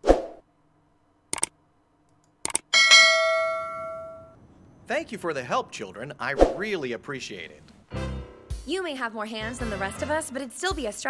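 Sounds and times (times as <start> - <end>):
sharp clicks: 1.3 - 2.7
notification bell ding: 2.8 - 4.3.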